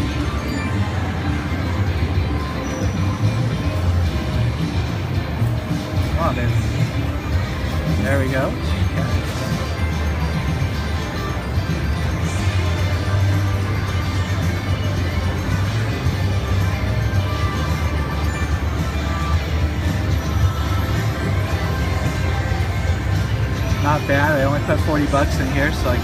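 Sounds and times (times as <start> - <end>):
slot machine music and jingles: 0.0 - 26.0.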